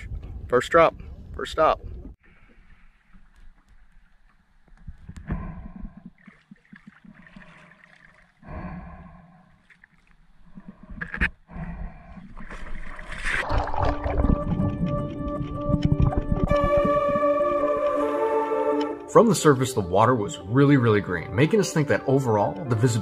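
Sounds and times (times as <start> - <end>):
wind rumble on microphone: 0.0 - 2.2, 13.4 - 17.6
rush of bubbles: 12.4 - 17.6
loud splash into water: 12.6 - 15.0
music: 13.8 - 23.0.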